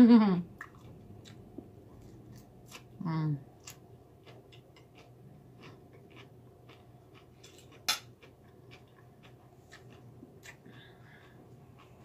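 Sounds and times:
person chewing food: 0:00.6 - 0:12.0.

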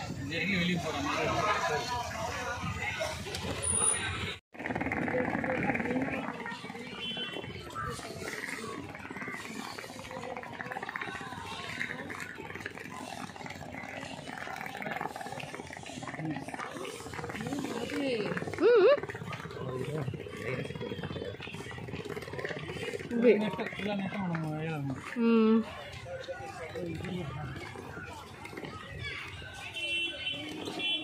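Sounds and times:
people chattering: 0:00.0 - 0:31.0.

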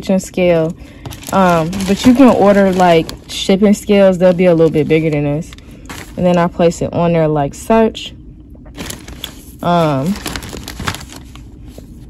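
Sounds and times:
plastic mailer crinkling: 0:00.8 - 0:06.5, 0:08.8 - 0:12.0.

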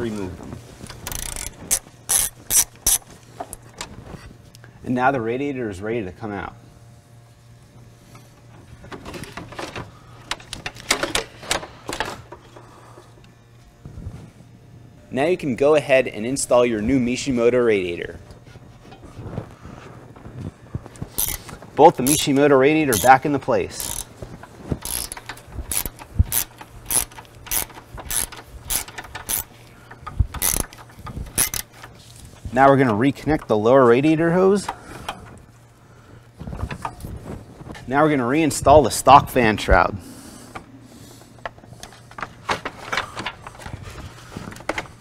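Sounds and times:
steady low hum: 0:00.0 - 0:45.0
metal knocks clicks and scrapes: 0:21.1 - 0:32.0.

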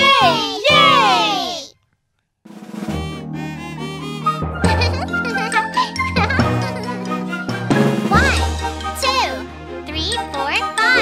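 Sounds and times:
drums: 0:02.5 - 0:03.3, 0:06.0 - 0:11.0.

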